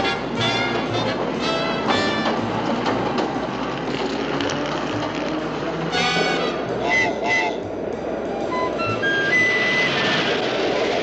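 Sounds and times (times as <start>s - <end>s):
subway train rushing rumble: 0.0s - 11.0s.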